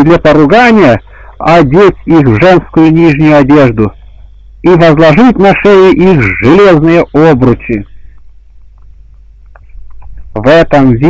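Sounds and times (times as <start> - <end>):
faint hiss: 0.0 - 11.0
steady low hum: 0.0 - 11.0.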